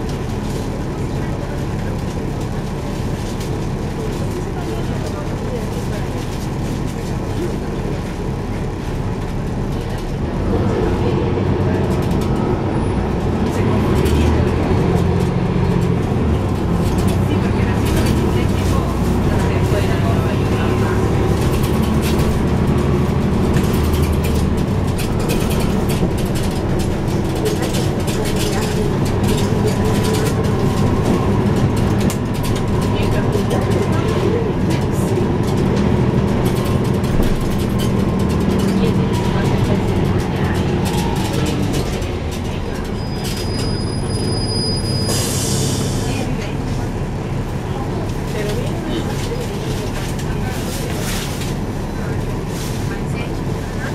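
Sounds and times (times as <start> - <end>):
bus diesel engine droning: 0.0 - 53.9
road noise: 0.0 - 53.9.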